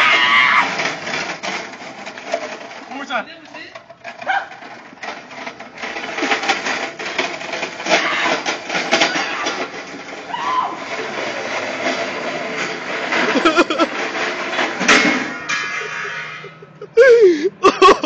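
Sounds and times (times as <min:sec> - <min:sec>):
metal cart rattling on asphalt: 0:00.0 - 0:18.0.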